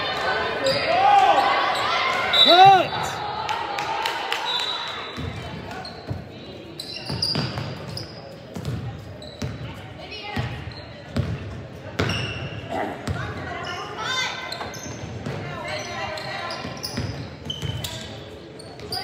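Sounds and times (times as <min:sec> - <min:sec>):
voices echoing in gym: 0:00.0 - 0:19.0.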